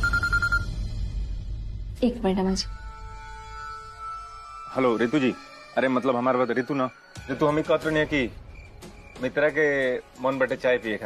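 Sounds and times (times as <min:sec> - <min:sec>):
phone ringing: 0:00.0 - 0:00.7.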